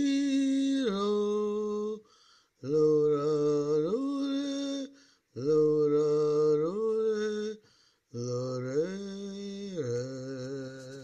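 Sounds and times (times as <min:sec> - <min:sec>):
low wordless chant-like melody: 0:00.0 - 0:11.0.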